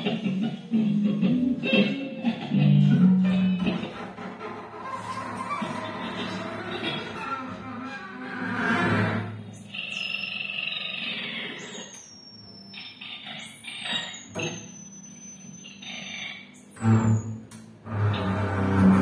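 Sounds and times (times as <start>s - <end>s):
low double bass notes: 16.8s - 19.0s.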